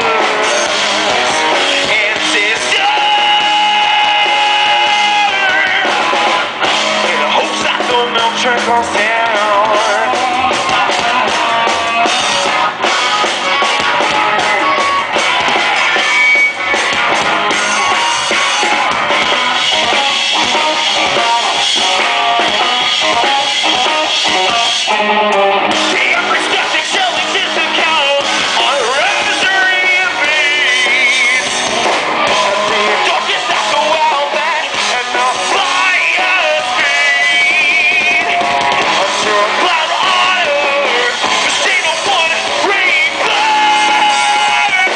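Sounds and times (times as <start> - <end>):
drum kit: 0.0 - 44.9
electric guitars: 0.0 - 44.9
lead singer: 0.0 - 44.9.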